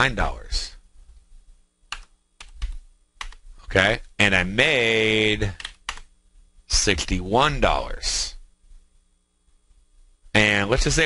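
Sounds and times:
computer keyboard keystrokes: 1.9s - 3.4s, 5.6s - 6.1s.

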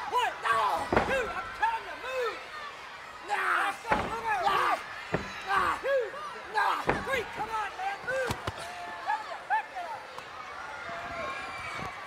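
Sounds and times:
crowd calling out: 0.0s - 12.0s
bodies slamming on ring canvas: 0.8s - 1.5s, 3.9s - 4.4s, 5.1s - 5.7s, 6.8s - 7.5s.

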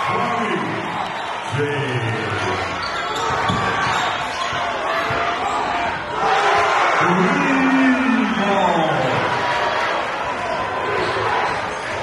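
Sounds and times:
crowd chatter: 0.0s - 12.0s
people shouting: 3.2s - 12.0s
basketball bouncing on hardwood: 3.3s - 4.0s.

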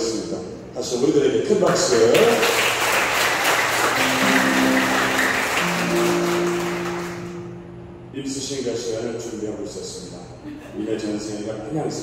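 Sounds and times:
audience applauding: 2.0s - 7.5s
guitar held notes: 4.0s - 8.6s.

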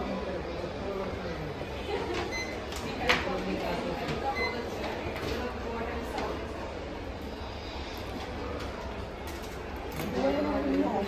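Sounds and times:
low rumble of indoor shop: 0.0s - 11.0s.

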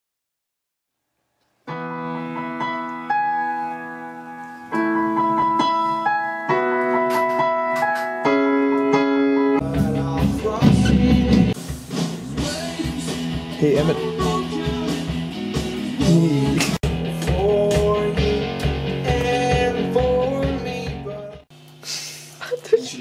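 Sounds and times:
piano chords: 1.7s - 11.6s, 12.4s - 21.4s
rock band playing: 4.8s - 21.4s.

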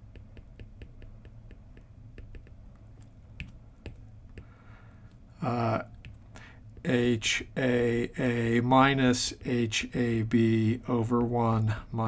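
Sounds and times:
stylus tapping on glass screen: 0.0s - 2.6s, 3.4s - 4.5s.

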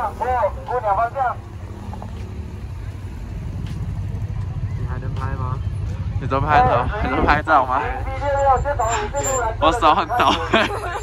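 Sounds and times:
car engines idling: 0.0s - 11.0s.

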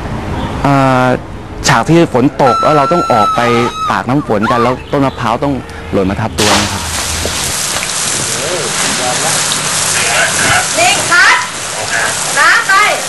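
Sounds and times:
people calling out: 2.2s - 5.1s
heavy rain pouring: 6.4s - 13.0s.

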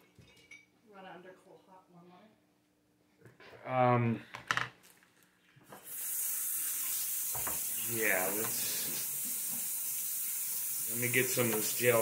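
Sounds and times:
faucet turned on: 5.8s - 12.0s
water running from faucet: 5.8s - 12.0s.

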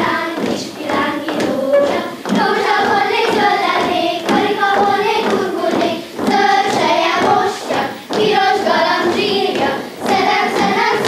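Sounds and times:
girls singing folk song: 0.0s - 11.0s.

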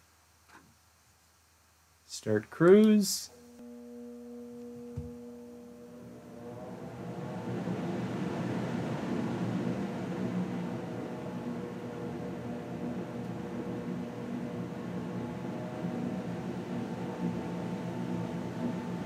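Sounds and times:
fan whine and air rush: 2.2s - 19.0s.

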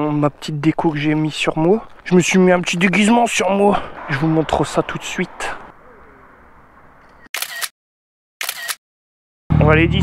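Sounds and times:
camera shutter click: 7.4s - 7.7s, 8.4s - 8.8s.

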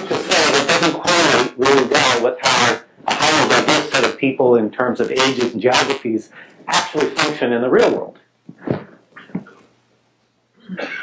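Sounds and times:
man speaking: 0.0s - 8.2s.

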